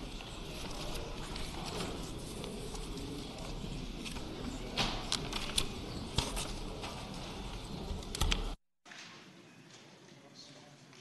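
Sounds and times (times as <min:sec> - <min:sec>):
large room background noise: 0:00.0 - 0:11.0.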